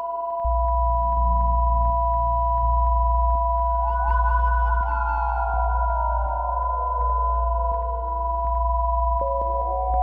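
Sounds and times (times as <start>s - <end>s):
synthesizer drone: 0.5s - 10.0s.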